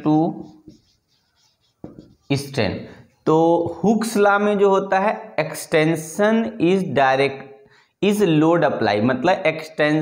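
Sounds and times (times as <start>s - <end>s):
man speaking: 0.0s - 0.6s, 2.3s - 7.4s
marker pen writing on whiteboard: 0.0s - 4.2s.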